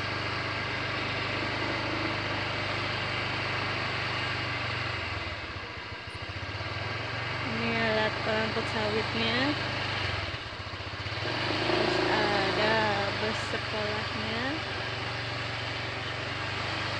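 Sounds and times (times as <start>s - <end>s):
engine idling: 0.0s - 16.9s.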